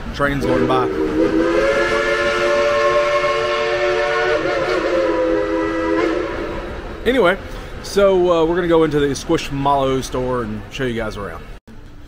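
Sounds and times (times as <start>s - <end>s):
steam locomotive whistle: 0.4s - 7.0s.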